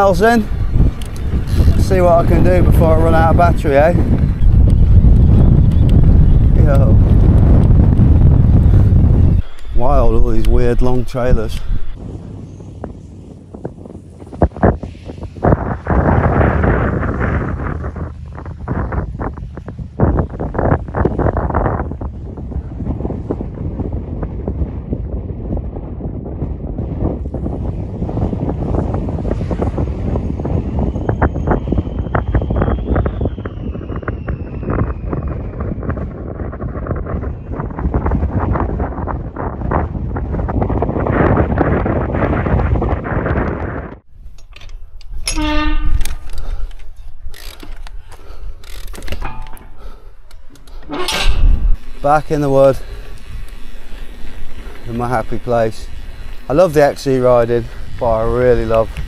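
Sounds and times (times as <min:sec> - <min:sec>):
heavy wind buffeting microphone: 0:00.0 - 0:59.0
short squeak: 0:45.2 - 0:46.2, 0:50.7 - 0:51.7.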